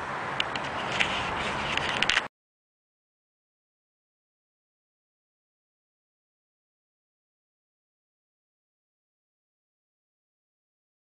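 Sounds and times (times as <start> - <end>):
camera handling rustle: 0.5 - 2.3.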